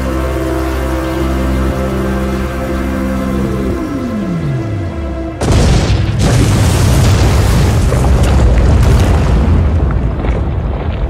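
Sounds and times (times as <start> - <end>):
crackling debris: 5.4 - 11.0
rock crashing with deep rumble: 5.4 - 11.0.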